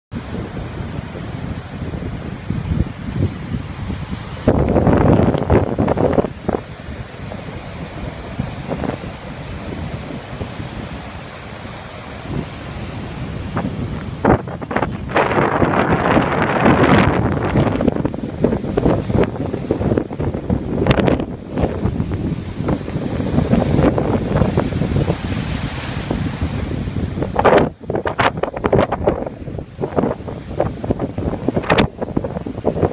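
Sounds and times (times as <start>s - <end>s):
gusty wind buffeting microphone: 0.1s - 32.9s
surf breaking on beach: 0.1s - 32.9s.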